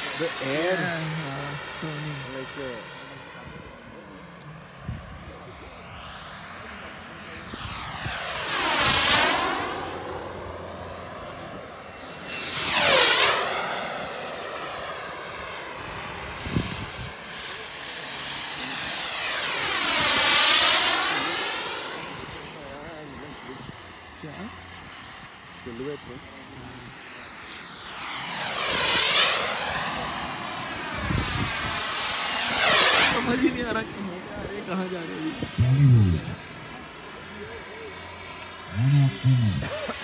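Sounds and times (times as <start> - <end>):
model jet passing: 0.0 - 40.0.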